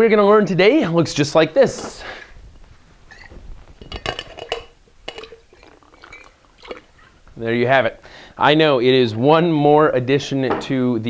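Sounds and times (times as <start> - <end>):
bottle and shaker tin knocking: 3.8 - 6.9.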